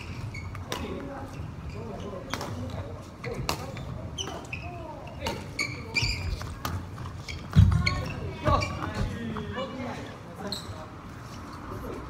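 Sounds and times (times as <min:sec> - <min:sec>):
players talking: 0:00.5 - 0:12.0
short high squeak: 0:05.5 - 0:06.4.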